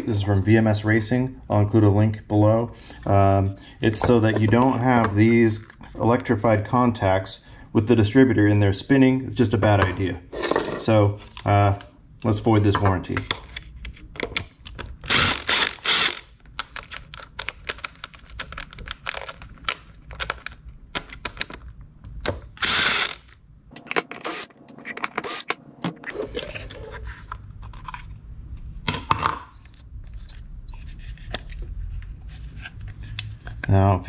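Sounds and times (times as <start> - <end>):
cordless drill spinning screws: 15.1 - 16.3, 22.6 - 24.5, 25.2 - 25.6.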